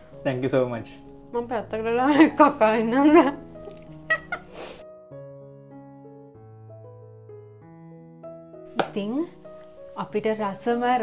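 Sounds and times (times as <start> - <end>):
soft keyboard background music: 0.0 - 11.0
breathy puff: 4.4 - 4.9.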